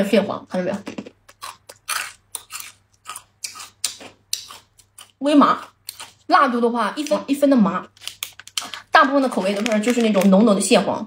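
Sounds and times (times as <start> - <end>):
crunchy chewing of rice cracker: 1.3 - 6.3.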